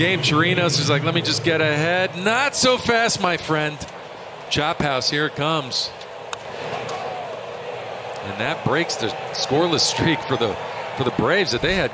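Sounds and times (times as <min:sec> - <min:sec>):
stadium crowd noise: 0:00.0 - 0:11.9.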